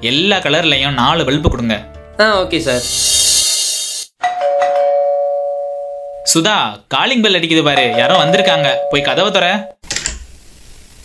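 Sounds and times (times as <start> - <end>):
doorbell chiming: 4.2 - 6.3, 7.8 - 9.8.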